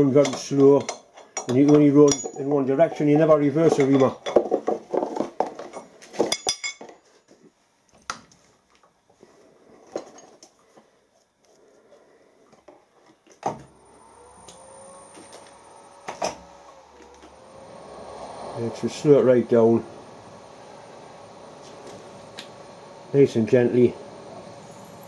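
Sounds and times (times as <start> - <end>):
spanner clinking on metal: 0.2 - 4.5
machine switching on with thump: 13.4 - 23.2
machine humming and whining: 13.4 - 25.0.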